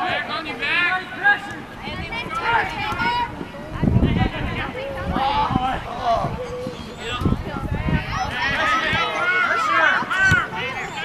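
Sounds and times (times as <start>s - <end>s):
people shouting: 8.1s - 11.0s.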